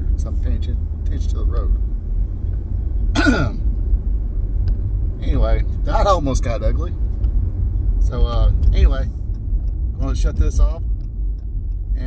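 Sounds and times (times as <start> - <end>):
car cabin rumble: 0.0 - 12.0
person coughing: 3.2 - 3.6.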